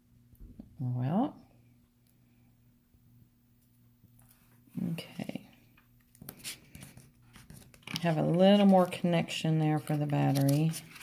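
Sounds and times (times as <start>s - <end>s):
tape and paper crinkling: 6.1s - 11.0s.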